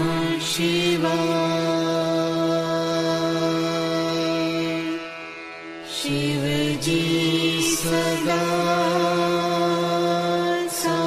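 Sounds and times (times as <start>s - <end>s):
person chanting mantra: 0.0s - 5.1s, 5.8s - 11.0s.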